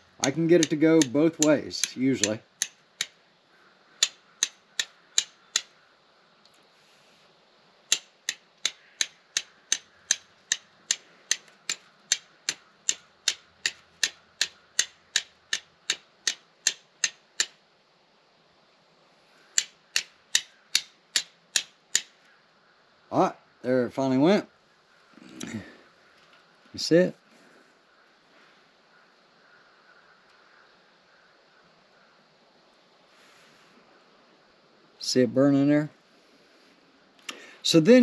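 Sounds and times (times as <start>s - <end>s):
steel striker clicking on flint: 0.1s - 3.2s, 4.0s - 5.8s, 7.9s - 17.6s, 19.5s - 22.2s.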